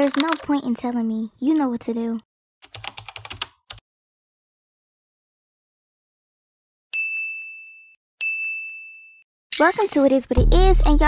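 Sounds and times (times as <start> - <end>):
high bell-like dings: 6.9 - 9.3.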